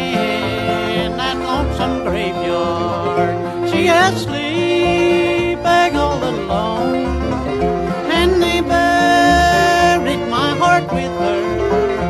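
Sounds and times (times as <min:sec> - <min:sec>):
banjo picking: 0:00.0 - 0:12.0
string band playing: 0:00.0 - 0:12.0.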